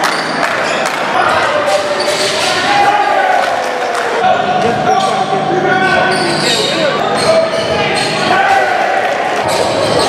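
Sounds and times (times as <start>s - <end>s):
players and spectators voices: 0.0s - 10.0s.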